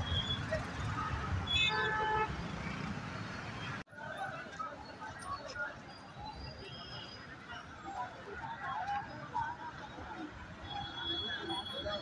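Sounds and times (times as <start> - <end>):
street and crowd noise: 0.0 - 12.0.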